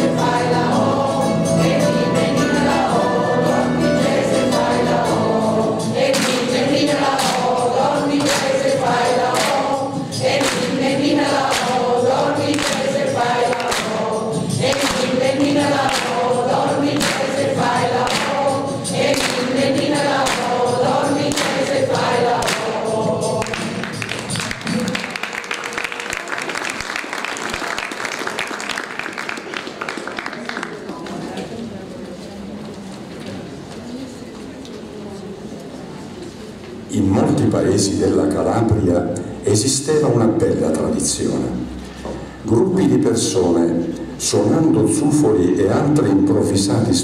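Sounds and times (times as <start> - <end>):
choir singing: 0.0 - 25.0
backing track music: 0.0 - 25.9
rhythmic clapping along: 0.0 - 31.2
audience applause: 23.4 - 31.3.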